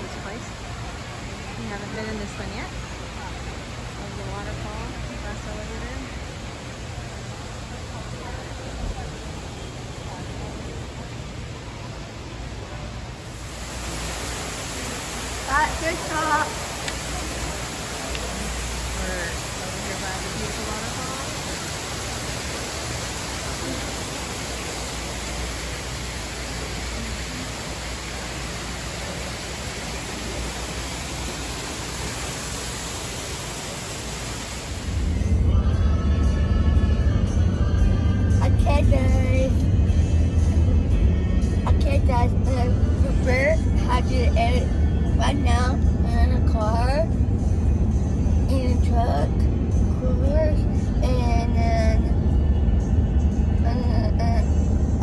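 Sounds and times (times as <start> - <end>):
aquarium waterfall rushing: 0.0 - 35.5, 41.6 - 52.2
car cabin road rumble: 34.4 - 55.0
music with vocals: 34.9 - 55.0.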